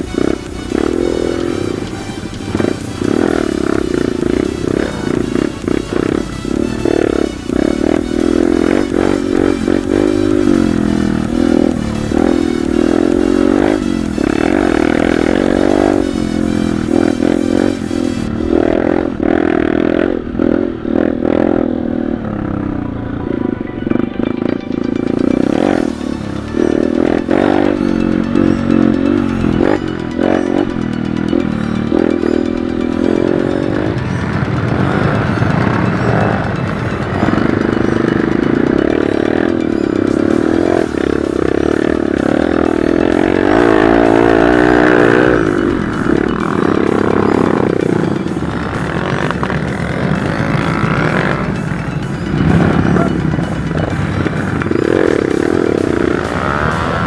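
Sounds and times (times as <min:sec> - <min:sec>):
background music: 0:00.0 - 0:57.0
motorcycle engine revving: 0:00.0 - 0:57.0.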